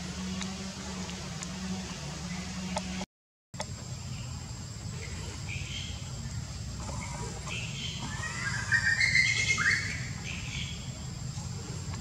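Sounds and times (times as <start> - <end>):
baby monkey crying: 8.0 - 10.0.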